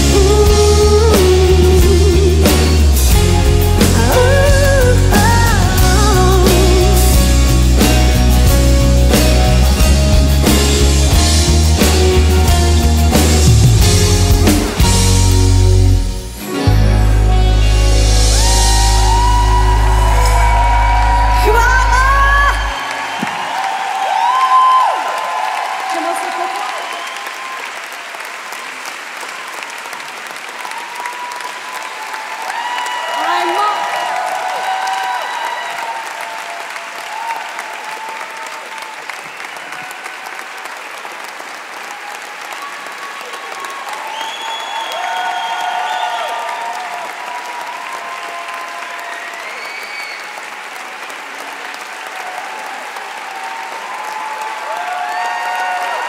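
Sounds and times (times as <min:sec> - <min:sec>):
large audience applauding: 0:00.0 - 0:56.0.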